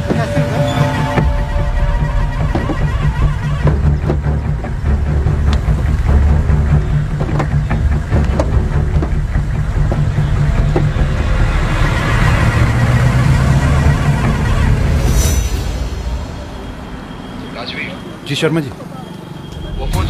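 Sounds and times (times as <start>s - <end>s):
background music: 0.0s - 17.6s.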